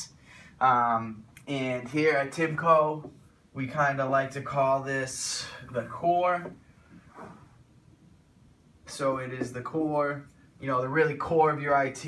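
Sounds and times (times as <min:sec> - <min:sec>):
marker strokes on whiteboard: 0:03.0 - 0:03.4.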